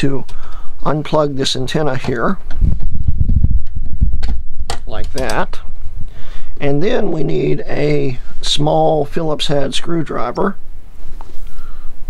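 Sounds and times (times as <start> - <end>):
low rumbling handling noise: 2.0 - 11.4.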